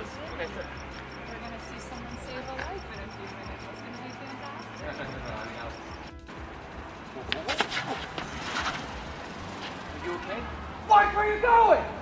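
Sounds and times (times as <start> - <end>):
low vehicle rumble: 0.0 - 11.3.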